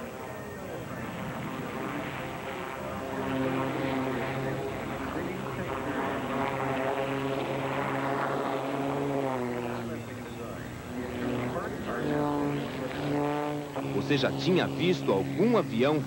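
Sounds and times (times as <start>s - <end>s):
biplane engine and propeller: 0.0s - 16.0s.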